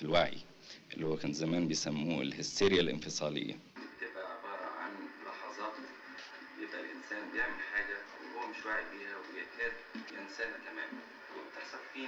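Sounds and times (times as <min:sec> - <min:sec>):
man talking from television speaker: 0:00.0 - 0:12.0.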